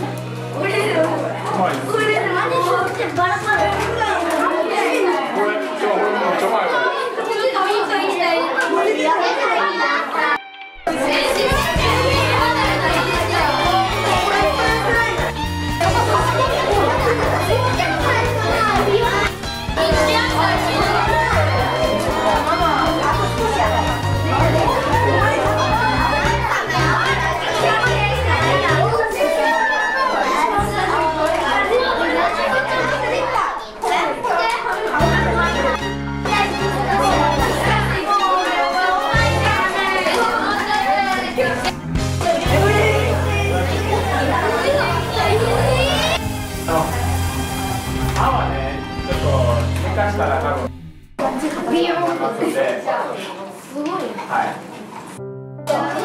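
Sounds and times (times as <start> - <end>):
low background music: 0.0 - 4.8, 10.4 - 33.6, 34.9 - 51.8
children chattering: 0.0 - 56.0.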